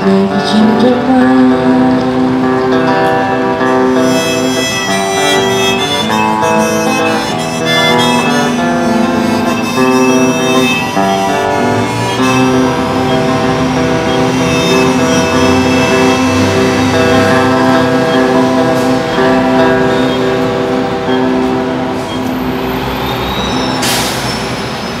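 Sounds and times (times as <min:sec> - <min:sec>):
strummed acoustic guitar: 0:00.0 - 0:22.6
harmonica playing chords: 0:02.3 - 0:23.8.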